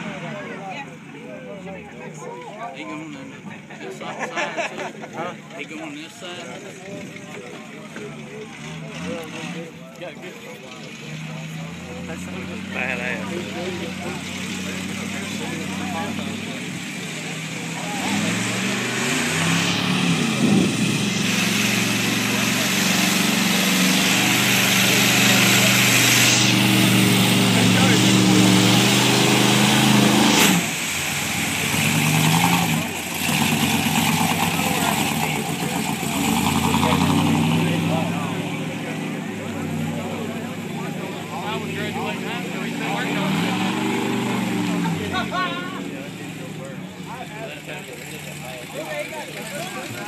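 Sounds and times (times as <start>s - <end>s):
truck engine revving in mud: 0.0s - 50.0s.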